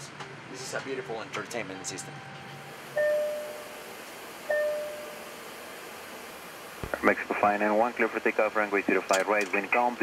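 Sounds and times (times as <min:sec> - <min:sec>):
steady background hiss: 0:00.0 - 0:10.0
chime tones: 0:03.0 - 0:03.8, 0:04.5 - 0:05.3.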